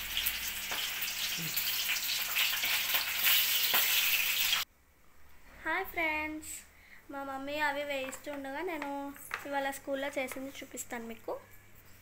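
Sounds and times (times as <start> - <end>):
corn kernels frying in oil: 0.0 - 4.7.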